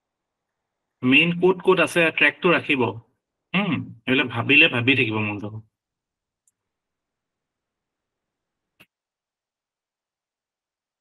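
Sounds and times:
man speaking: 0:01.0 - 0:03.0, 0:03.6 - 0:05.6.

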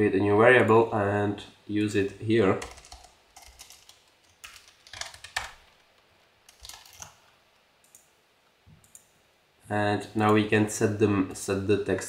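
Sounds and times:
computer keyboard typing: 0:02.5 - 0:05.8, 0:06.5 - 0:07.2.

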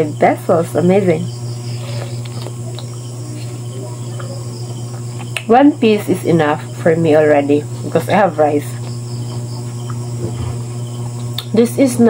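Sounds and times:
insects chirring: 0:00.0 - 0:12.0
steady low hum: 0:00.0 - 0:12.0.

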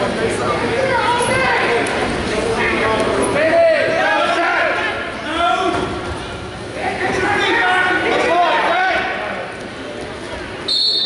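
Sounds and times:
spectators talking and calling out: 0:00.0 - 0:11.0.

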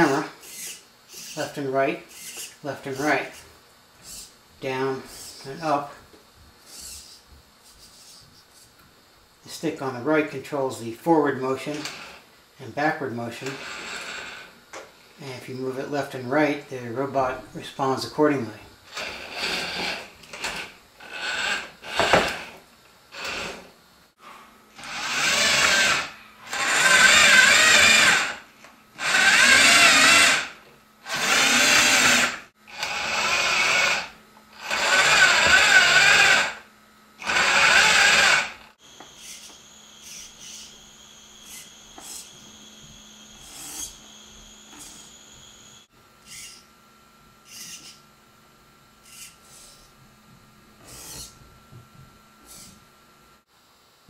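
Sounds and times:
faint high whine: 0:00.0 - 0:22.2, 0:38.7 - 0:50.0
robot motors whirring: 0:00.4 - 0:01.4, 0:02.1 - 0:02.6, 0:03.3 - 0:04.3, 0:06.7 - 0:07.2, 0:24.8 - 0:28.4, 0:29.0 - 0:30.5, 0:31.1 - 0:36.6, 0:37.2 - 0:46.7, 0:47.5 - 0:48.0, 0:49.0 - 0:49.9, 0:50.8 - 0:51.4, 0:52.4 - 0:52.8.

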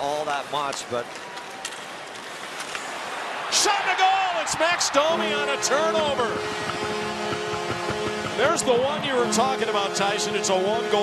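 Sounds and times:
crowd hum: 0:02.1 - 0:11.0
hockey sticks clacking on puck: 0:06.1 - 0:10.6.

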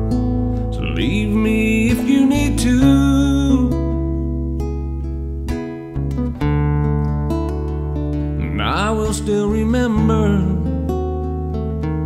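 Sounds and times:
acoustic guitar chords: 0:00.0 - 0:12.0
electric bass notes: 0:00.0 - 0:12.0.

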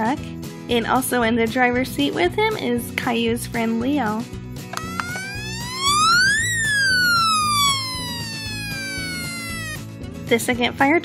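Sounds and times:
siren wailing: 0:04.8 - 0:09.9.

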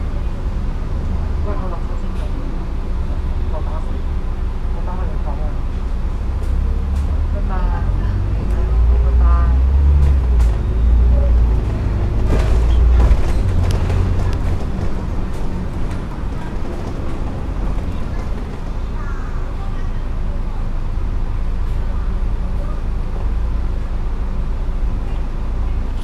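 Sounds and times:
bus engine rumble: 0:00.0 - 0:26.0
clicks and rattles from bus body: 0:11.6 - 0:18.8.

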